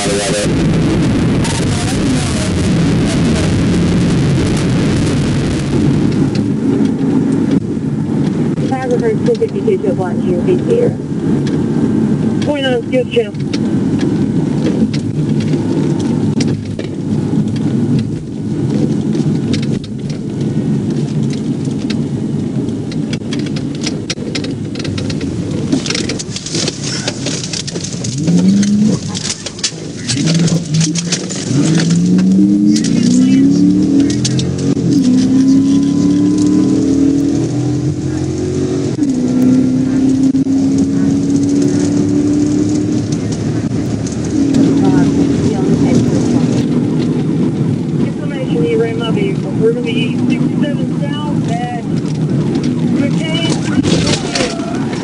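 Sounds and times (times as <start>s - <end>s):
car engine revving: 0.0s - 55.0s
road noise in car cabin: 0.0s - 55.0s.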